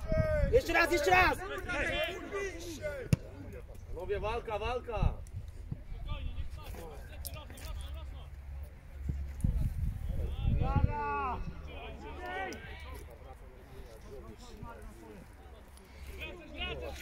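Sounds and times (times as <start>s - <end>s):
players shouting: 0.0s - 3.6s, 10.2s - 13.3s.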